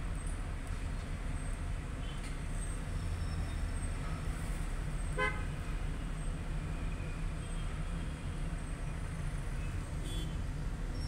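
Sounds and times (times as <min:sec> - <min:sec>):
engine and traffic rumble: 0:00.0 - 0:11.0
vehicle horn toot: 0:05.2 - 0:05.5, 0:10.0 - 0:10.4.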